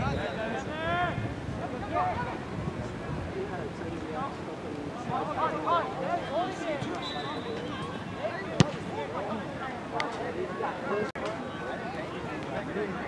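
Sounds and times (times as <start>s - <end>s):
soccer ball kicked: 8.6s - 8.9s.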